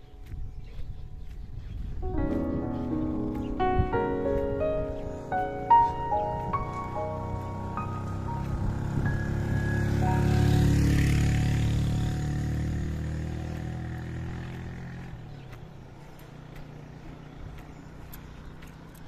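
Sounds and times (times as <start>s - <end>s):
soft music notes: 0.0s - 14.0s
motorcycle engine passing by: 1.2s - 19.0s.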